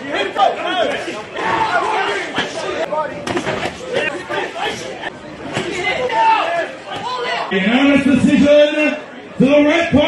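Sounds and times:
spectators calling and chattering: 0.0s - 10.0s.

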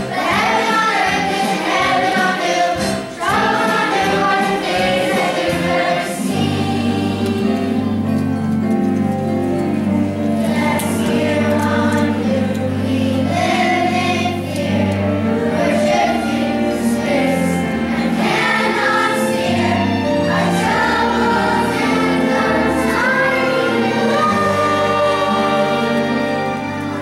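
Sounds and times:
children singing in chorus: 0.0s - 8.0s, 10.3s - 26.7s
instrumental accompaniment: 0.0s - 27.0s.

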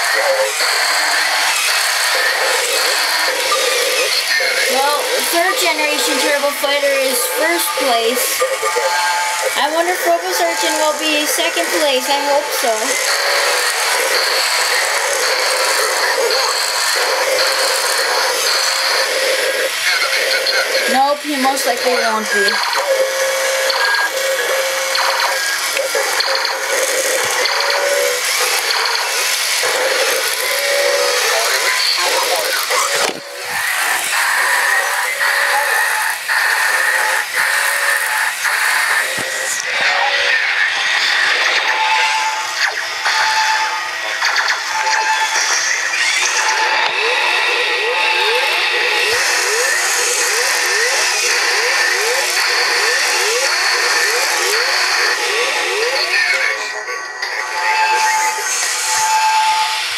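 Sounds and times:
synthesized voice: 3.3s - 13.4s, 19.0s - 22.7s, 31.2s - 33.6s.

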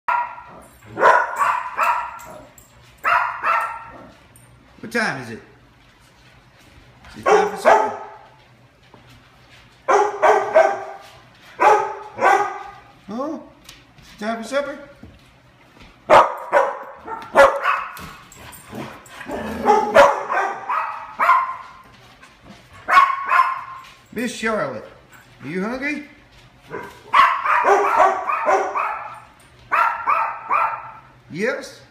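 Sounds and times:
dogs barking: 0.1s - 4.2s, 7.2s - 8.4s, 9.9s - 12.9s, 16.1s - 21.8s, 22.8s - 23.8s, 26.7s - 31.2s.

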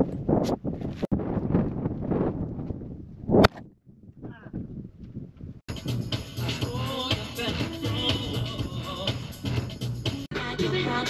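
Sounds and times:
wind noise on microphone: 0.0s - 5.7s.

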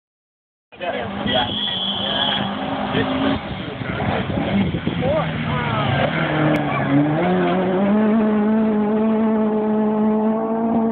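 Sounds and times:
rally car engine at high revs: 2.3s - 10.9s.

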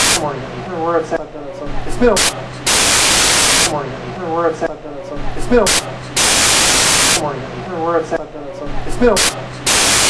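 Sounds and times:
person speaking: 0.0s - 2.7s, 3.3s - 9.5s
loud static hiss: 0.0s - 10.0s.

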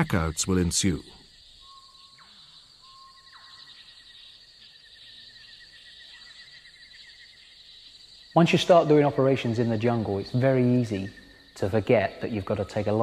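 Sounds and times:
high insect drone: 0.0s - 13.0s
pulsing insect trill: 0.0s - 13.0s.

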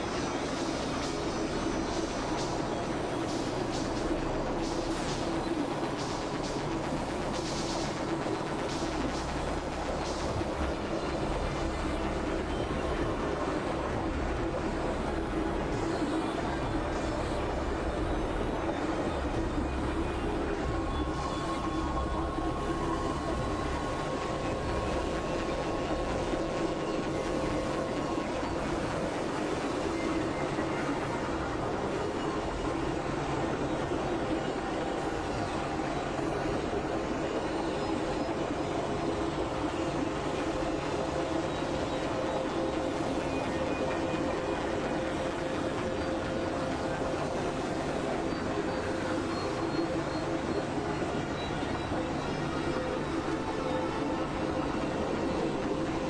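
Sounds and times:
synthesizer noise drone: 0.0s - 56.0s.

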